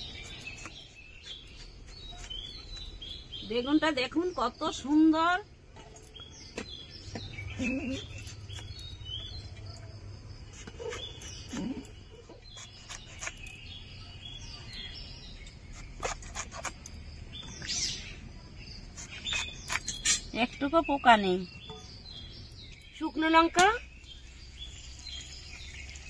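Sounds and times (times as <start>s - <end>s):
birds chirping: 0.0s - 26.0s
blade slicing vegetable: 10.6s - 13.6s, 15.6s - 16.9s.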